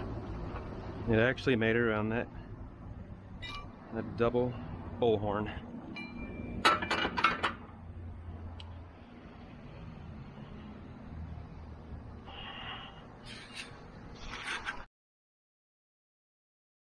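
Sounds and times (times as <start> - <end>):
low steady hum: 0.0 - 14.4
metal clinks: 3.4 - 3.8, 5.9 - 7.5.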